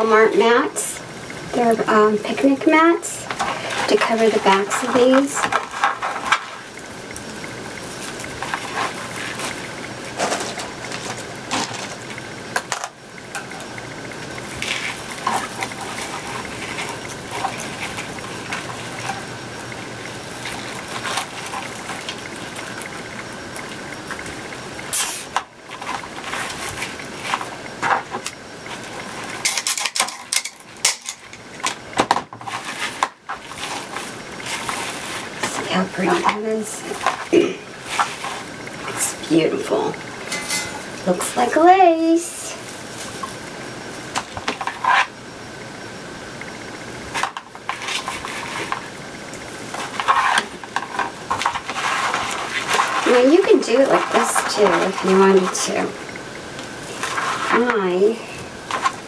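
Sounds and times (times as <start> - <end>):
plastic mesh rustling and crinkling: 1.4 - 12.5, 13.4 - 24.9, 25.5 - 39.3, 40.0 - 45.2, 46.4 - 59.0.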